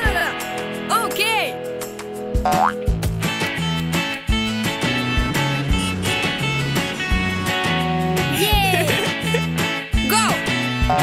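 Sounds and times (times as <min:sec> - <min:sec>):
cartoon background music: 0:02.4 - 0:11.0
springy boing sound effects: 0:02.5 - 0:02.9.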